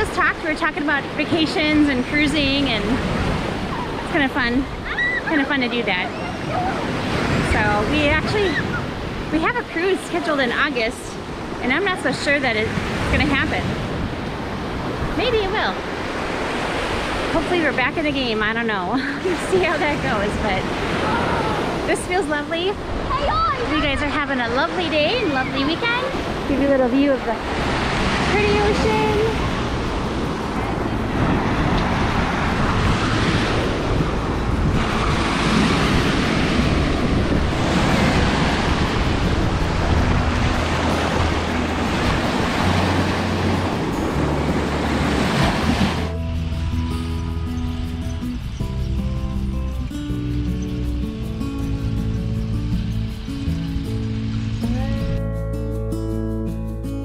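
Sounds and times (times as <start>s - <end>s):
small waves breaking on sand: 0.0s - 46.9s
soft background music: 23.4s - 57.0s.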